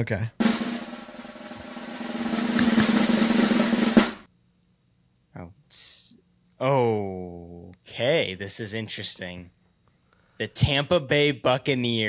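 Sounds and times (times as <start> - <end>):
sharp drum hit: 0.4 - 4.3
snare drum roll: 0.4 - 4.3.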